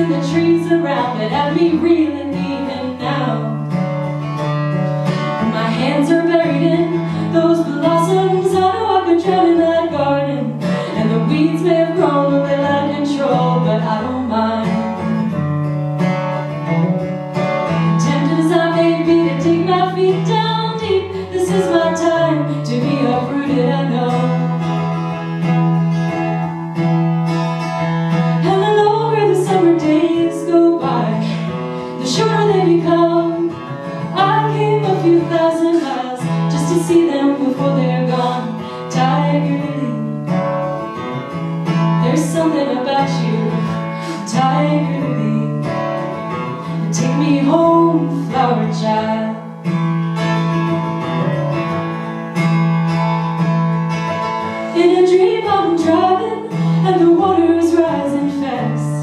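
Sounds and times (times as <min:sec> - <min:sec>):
strummed acoustic guitar: 0:00.0 - 0:59.0
woman singing folk song: 0:00.0 - 0:59.0.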